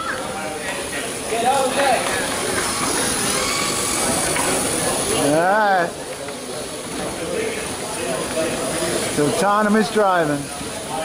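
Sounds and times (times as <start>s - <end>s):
indistinct chatter: 0.0s - 11.0s
steady hiss: 0.0s - 11.0s.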